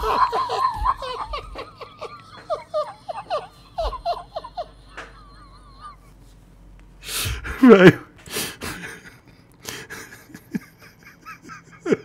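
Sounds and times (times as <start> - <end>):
man laughing hard: 0.0 - 6.2, 7.2 - 12.0.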